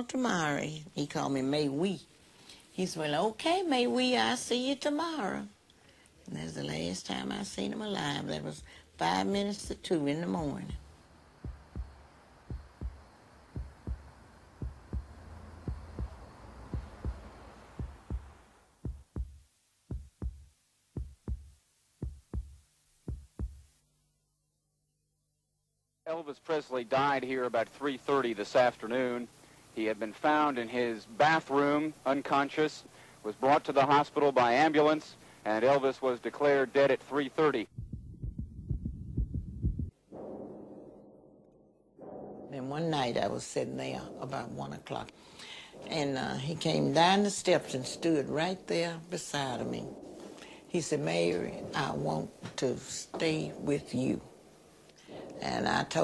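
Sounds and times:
soft hiss: 0:00.0 - 0:24.3, 0:26.0 - 0:39.9, 0:42.5 - 0:56.0
heartbeat thumps: 0:08.5 - 0:23.8, 0:37.6 - 0:40.9
low thudding and rumbling: 0:10.4 - 0:23.7, 0:37.7 - 0:43.3.

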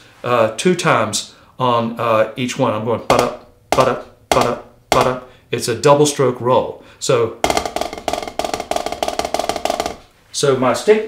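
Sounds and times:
drumsticks on practice pad: 0:03.1 - 0:05.4, 0:07.4 - 0:10.1.

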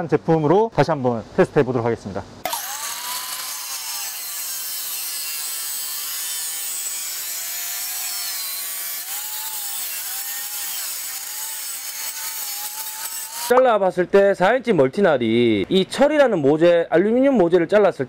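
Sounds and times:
angle grinder cutting steel: 0:02.4 - 0:13.6.

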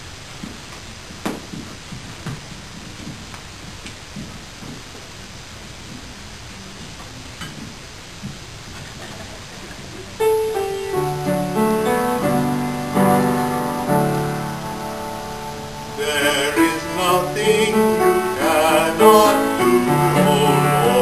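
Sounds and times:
piano chords and melody: 0:10.2 - 0:21.0
man singing with vibrato: 0:15.9 - 0:21.0.

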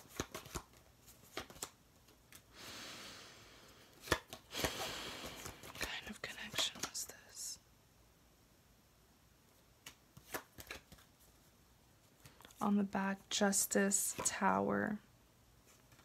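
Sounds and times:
cards rustling: 0:00.0 - 0:02.5, 0:03.9 - 0:07.0, 0:09.8 - 0:12.6
cards snapping: 0:00.0 - 0:02.5, 0:04.0 - 0:05.9, 0:09.8 - 0:11.1.

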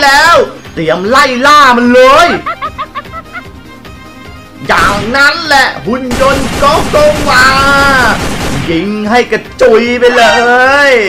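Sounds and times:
quiet background music: 0:00.0 - 0:11.0
person snickering laugh: 0:02.4 - 0:03.7.

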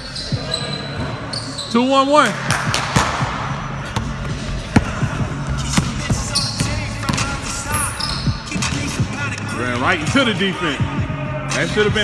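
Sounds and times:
basketball bouncing on hardwood floor: 0:03.9 - 0:07.5.

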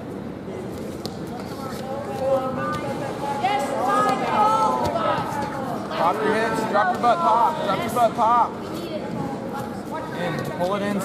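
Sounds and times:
background murmur of voices: 0:00.0 - 0:11.0.

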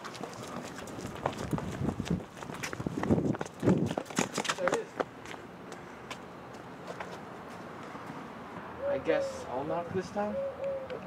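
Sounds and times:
footsteps on concrete: 0:00.0 - 0:08.3
outdoor background noise: 0:00.0 - 0:11.0.

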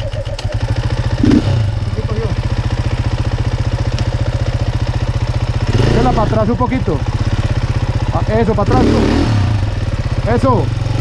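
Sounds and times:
dirt bike engine idling: 0:00.0 - 0:11.0.

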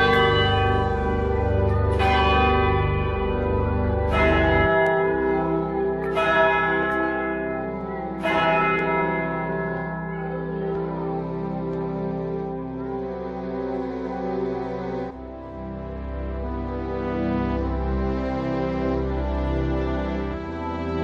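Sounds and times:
church bell strokes: 0:00.0 - 0:13.0
long bell hum: 0:00.0 - 0:13.0.

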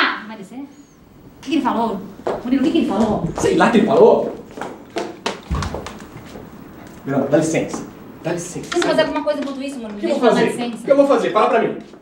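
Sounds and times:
footsteps on hard floor: 0:02.2 - 0:07.0.

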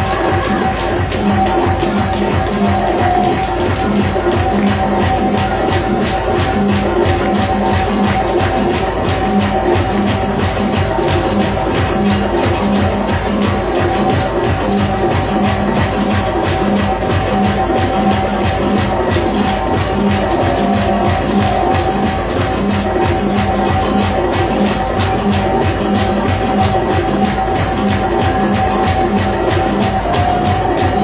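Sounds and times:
church worship music: 0:00.0 - 0:31.0
congregation clapping: 0:00.0 - 0:31.0.

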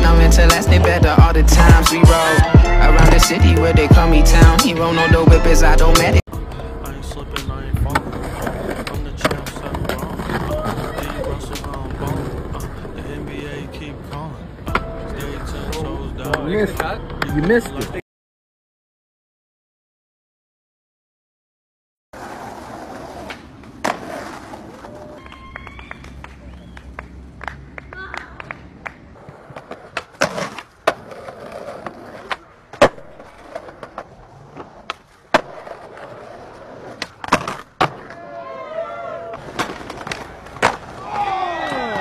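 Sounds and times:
outdoor noise: 0:00.0 - 0:18.0, 0:22.1 - 0:42.0
skateboard wheels rolling on stone: 0:07.2 - 0:14.8, 0:22.2 - 0:38.5, 0:39.2 - 0:42.0
skateboard clacking on ground: 0:07.3 - 0:13.3, 0:14.1 - 0:18.0, 0:22.2 - 0:26.3, 0:27.4 - 0:38.3, 0:39.3 - 0:42.0.

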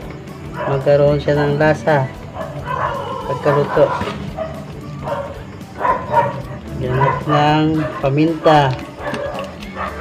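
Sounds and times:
dog yipping and barking: 0:00.5 - 0:00.9, 0:02.3 - 0:10.0.

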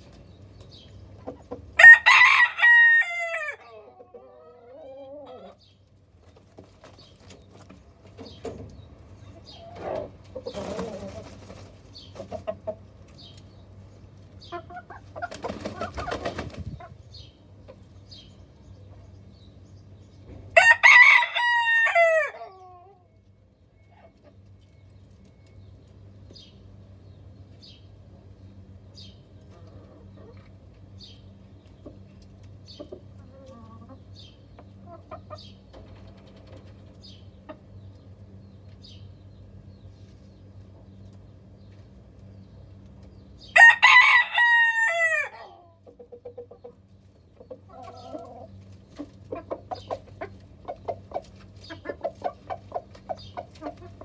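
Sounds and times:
steady low hum: 0:00.0 - 0:20.6, 0:22.3 - 0:44.4
chickens clucking: 0:00.0 - 0:54.0
wing flapping: 0:15.3 - 0:16.9.

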